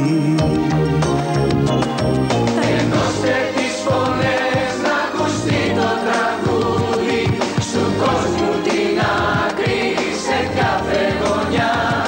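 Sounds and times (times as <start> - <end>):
band with steady beat: 0.4 - 12.0
voices singing in chorus: 2.6 - 12.0.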